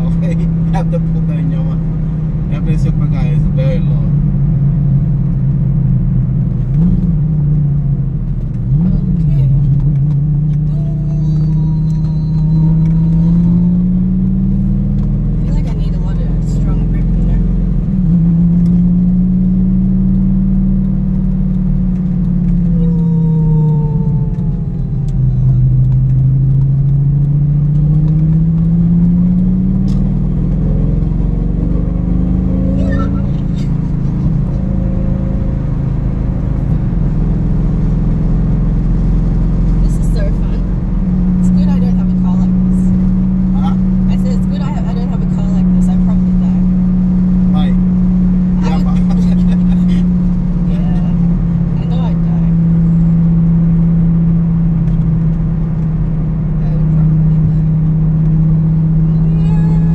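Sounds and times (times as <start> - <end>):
car engine revving from cabin: 0.0 - 59.9
low road rumble: 0.0 - 59.9.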